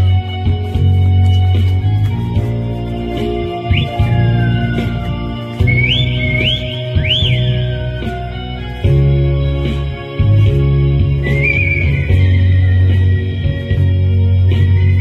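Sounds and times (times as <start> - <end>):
backing music with bass and chords: 0.0 - 15.0
person whistling: 3.7 - 8.3, 11.2 - 13.6.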